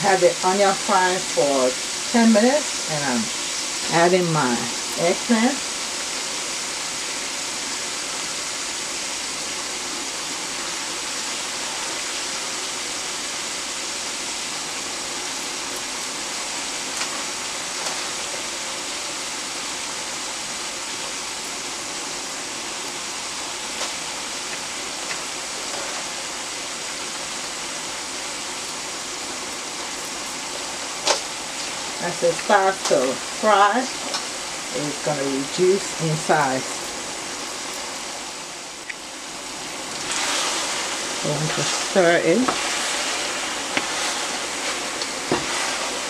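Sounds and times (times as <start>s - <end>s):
vegetables sizzling in oil: 0.0s - 46.0s.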